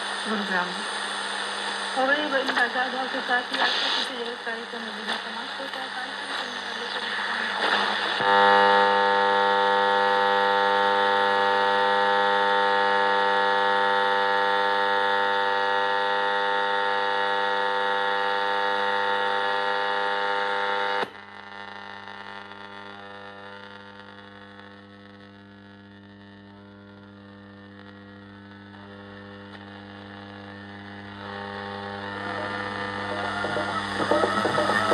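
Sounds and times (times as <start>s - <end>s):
faint hum: 0.0s - 34.9s
radio speaker buzzing drone: 0.0s - 34.9s.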